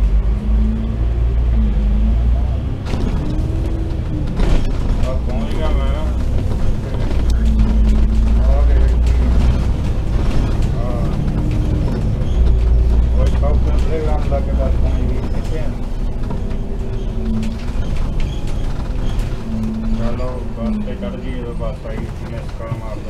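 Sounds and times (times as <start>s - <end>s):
bus engine droning: 0.0s - 23.0s
passengers' voices: 0.4s - 23.0s.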